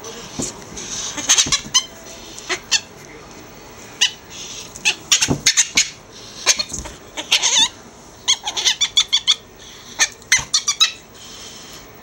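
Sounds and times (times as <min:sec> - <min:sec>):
ferret squeaking: 0:00.9 - 0:02.9, 0:03.9 - 0:11.1.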